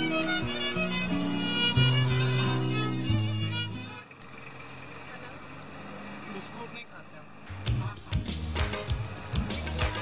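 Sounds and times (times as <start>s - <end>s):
music: 0.0s - 4.0s, 7.4s - 10.0s
car driving road noise: 0.0s - 10.0s
street voices: 0.0s - 10.0s.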